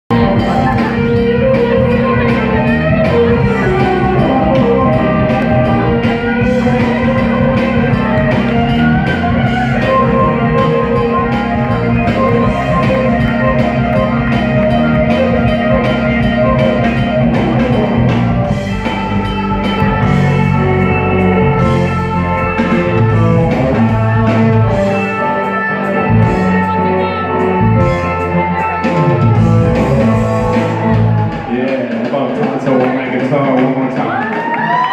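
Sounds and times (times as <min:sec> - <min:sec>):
keyboards: 0:00.0 - 0:34.9
drum kit: 0:00.1 - 0:34.9
electric guitars: 0:00.1 - 0:34.9
live rock band playing: 0:00.1 - 0:34.9.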